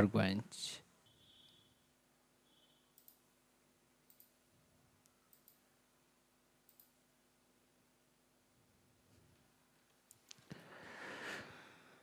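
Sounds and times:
faint computer mouse clicks: 0:02.9 - 0:03.2, 0:04.0 - 0:04.4, 0:05.0 - 0:05.6, 0:06.7 - 0:07.0.

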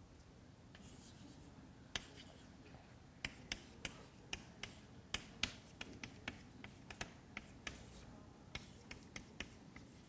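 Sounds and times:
chalk tapping on blackboard: 0:00.7 - 0:02.4, 0:03.2 - 0:10.0.

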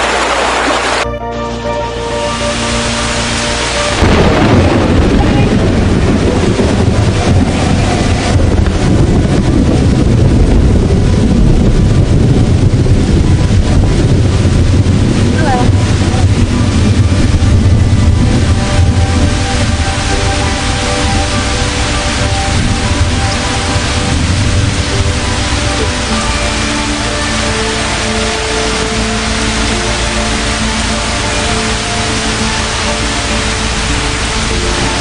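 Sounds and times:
floodwater rushing: 0:00.0 - 0:35.0
background music: 0:00.8 - 0:35.0.

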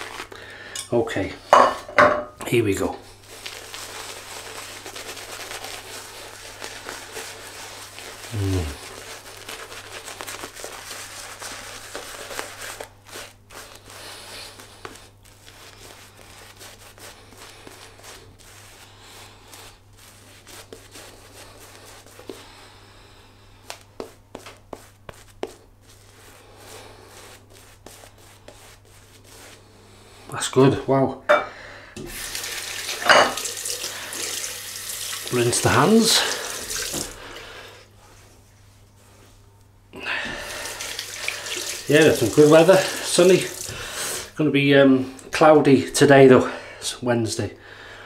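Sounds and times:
shaving brush scrubbing lather: 0:02.7 - 0:22.6, 0:23.6 - 0:30.8, 0:32.0 - 0:38.2, 0:40.2 - 0:44.5
falling vocal hum: 0:08.3 - 0:08.8.

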